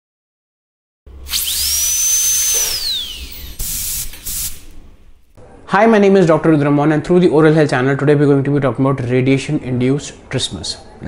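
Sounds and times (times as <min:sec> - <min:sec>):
dental drill whine: 0:01.1 - 0:04.9
hiss: 0:01.3 - 0:04.8.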